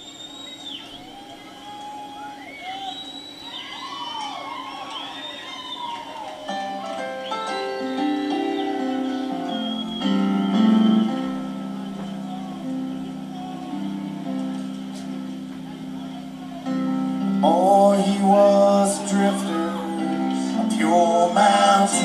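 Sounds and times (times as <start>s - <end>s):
sustained keyboard chords: 5.9s - 22.0s.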